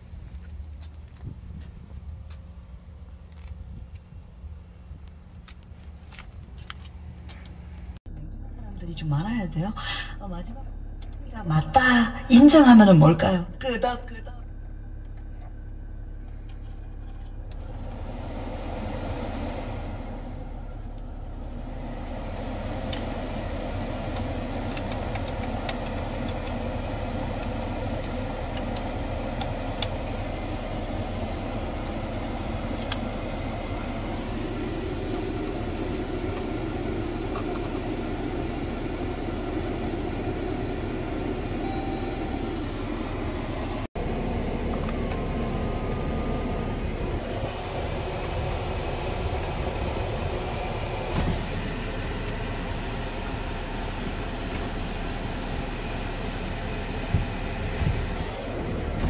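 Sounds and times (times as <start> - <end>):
car engine idling: 0.0 - 59.0
climate control fan: 3.4 - 59.0.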